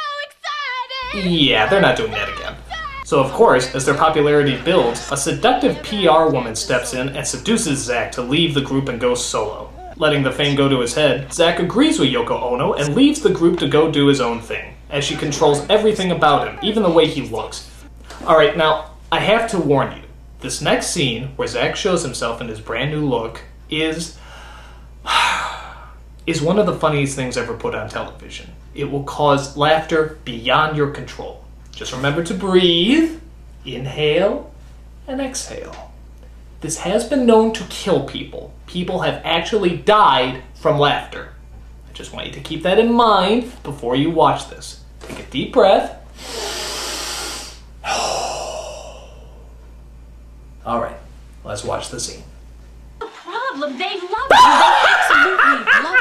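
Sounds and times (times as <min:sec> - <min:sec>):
man talking: 0:01.0 - 0:24.2, 0:26.2 - 0:34.5, 0:50.6 - 0:52.3
man breathing heavily: 0:24.2 - 0:26.0, 0:46.2 - 0:49.6.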